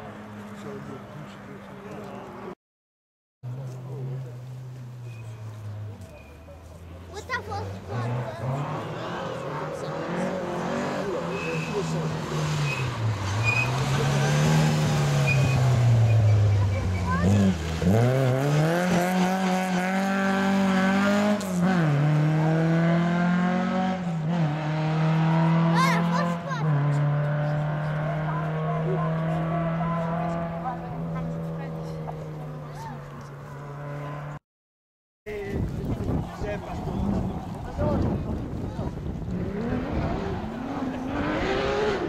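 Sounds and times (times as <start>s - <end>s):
rally car engine accelerating: 7.7s - 34.4s, 36.0s - 42.0s.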